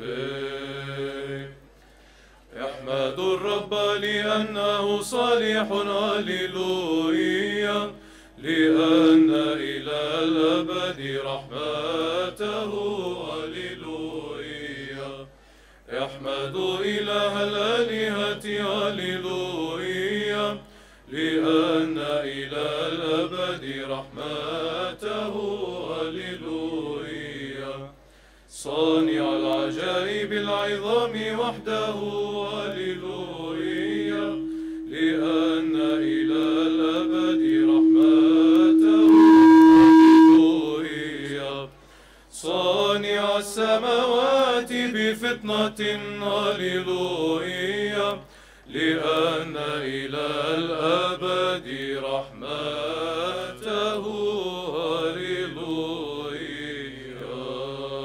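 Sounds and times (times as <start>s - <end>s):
male choir chanting: 0.0s - 1.6s, 2.6s - 15.3s, 15.9s - 27.9s, 28.5s - 41.8s, 42.4s - 58.0s
held low drone note: 8.4s - 10.6s, 28.7s - 31.9s, 32.5s - 41.0s.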